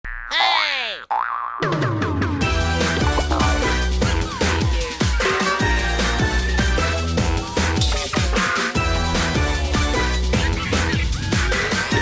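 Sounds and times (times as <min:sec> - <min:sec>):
electronic music with beat: 0:02.5 - 0:12.0.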